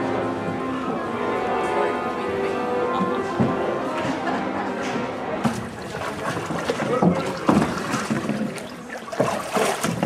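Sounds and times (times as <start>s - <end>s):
faint voices: 0.0s - 9.2s
water sloshing around oar: 5.4s - 10.0s
sharp wooden knocks: 9.2s - 10.0s.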